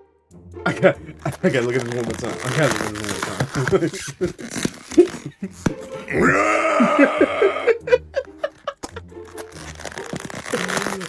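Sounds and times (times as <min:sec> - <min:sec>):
background music with bass: 0:00.0 - 0:11.0
styrofoam box crinkling: 0:01.2 - 0:07.2, 0:08.1 - 0:11.0.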